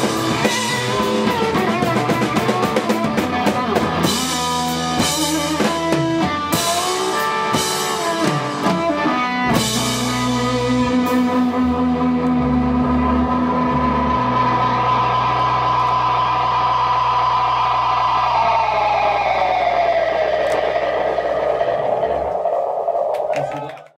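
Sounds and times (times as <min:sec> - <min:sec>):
electric guitars ringing out: 0:00.0 - 0:23.8
high tone sliding down: 0:04.0 - 0:23.9
clicks: 0:20.4 - 0:21.0.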